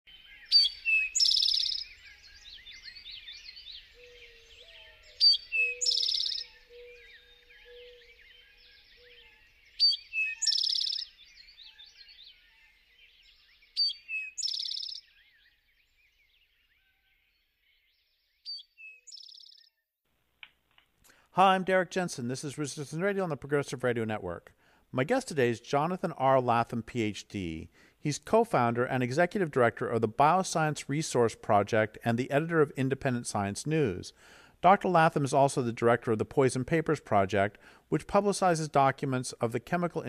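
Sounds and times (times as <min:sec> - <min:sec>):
low bird call: 0:00.1 - 0:19.7
small bird chirps: 0:00.1 - 0:19.8.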